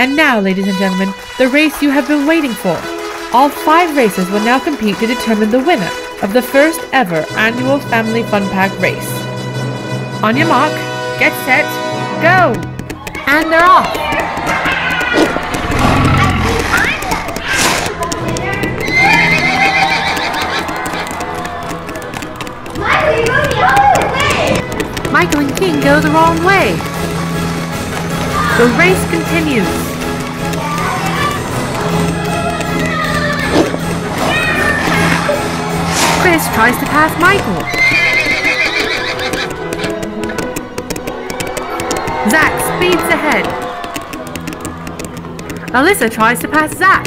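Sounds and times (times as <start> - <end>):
background music: 0.0 - 47.0
clip-clop hoofbeats: 0.1 - 47.0
horse whinnying: 14.4 - 17.8, 18.8 - 21.2, 37.4 - 40.0.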